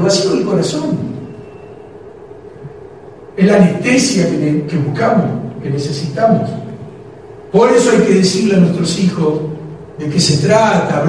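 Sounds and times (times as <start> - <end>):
man talking: 0.0 - 1.2, 3.4 - 6.9, 7.5 - 11.0
low room hum: 0.0 - 11.0.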